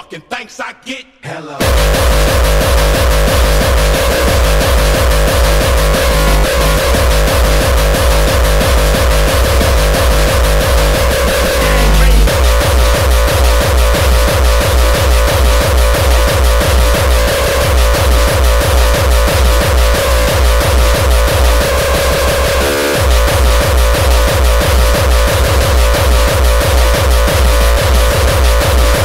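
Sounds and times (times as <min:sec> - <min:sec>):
fast kick drum: 0:01.6 - 0:29.0
noisy electronic layer: 0:01.6 - 0:29.0.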